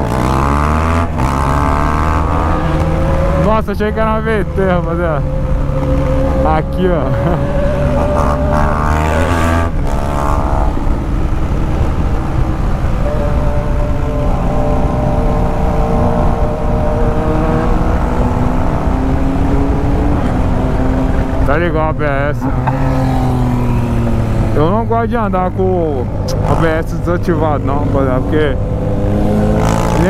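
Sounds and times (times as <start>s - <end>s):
motorcycle engine running: 0.0s - 30.0s.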